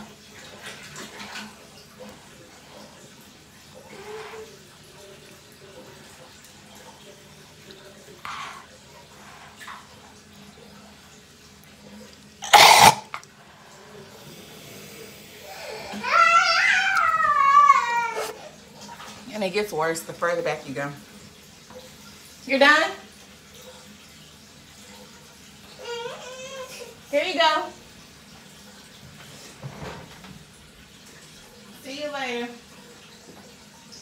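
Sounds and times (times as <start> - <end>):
loud cough-like burst: 12.4 - 13.1.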